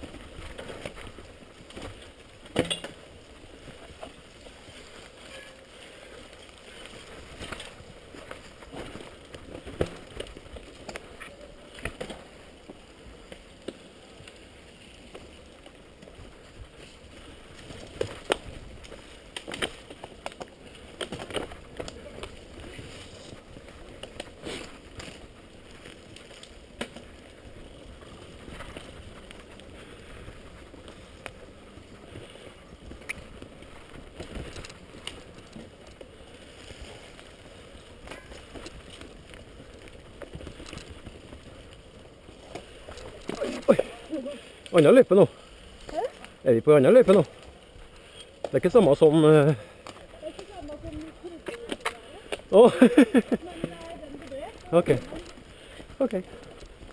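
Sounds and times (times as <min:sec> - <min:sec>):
bike tyres rolling on dirt: 0:00.0 - 0:56.9
bike knocks and clatters: 0:01.8 - 0:03.1, 0:08.7 - 0:11.0.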